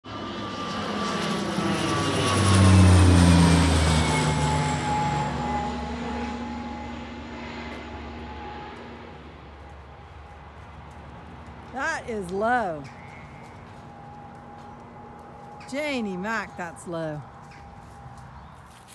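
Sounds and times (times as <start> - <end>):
plane passing overhead: 0.0 - 18.9.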